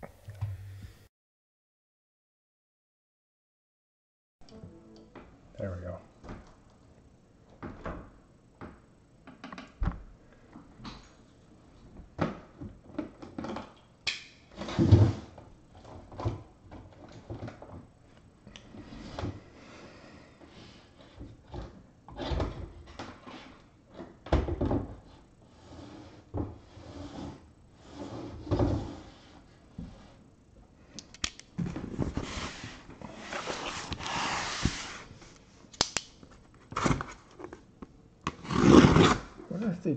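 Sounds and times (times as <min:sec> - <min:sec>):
cardboard scraping and rubbing: 0:31.8 - 0:35.2, 0:38.3 - 0:39.4.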